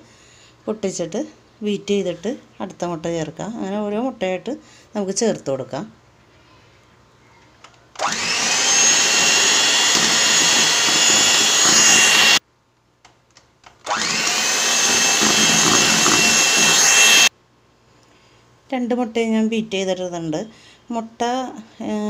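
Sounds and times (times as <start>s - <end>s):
electric hand mixer whine: 8.0s - 12.4s, 13.9s - 17.3s.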